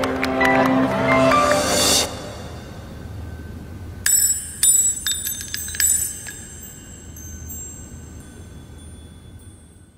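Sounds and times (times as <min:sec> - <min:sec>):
metal ring bouncing and clinking: 0:04.0 - 0:09.9.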